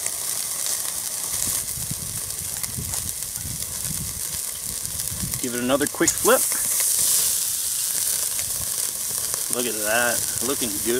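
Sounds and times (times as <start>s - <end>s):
steak sizzling on a grill: 0.0s - 10.9s.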